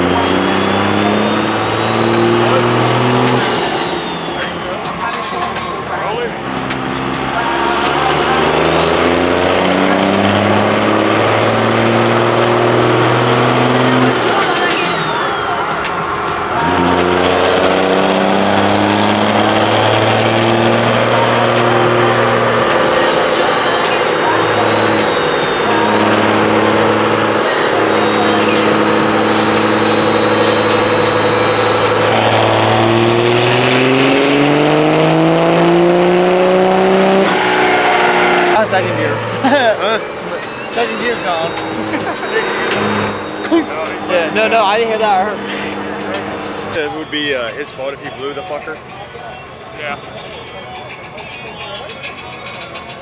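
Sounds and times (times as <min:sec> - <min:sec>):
diesel engine running under load: 0:00.0 - 0:53.0
high turbo whistle: 0:00.0 - 0:53.0
people talking: 0:00.0 - 0:53.0.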